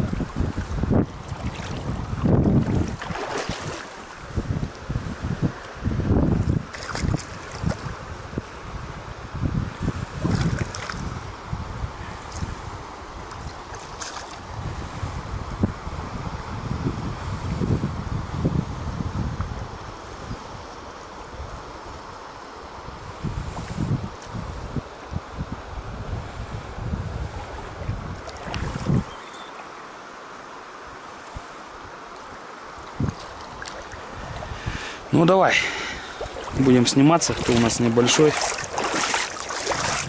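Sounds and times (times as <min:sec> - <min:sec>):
shallow river rushing: 0:00.0 - 0:15.9, 0:19.7 - 0:40.0
wind buffeting microphone: 0:00.0 - 0:22.2, 0:22.8 - 0:29.4, 0:32.7 - 0:40.0.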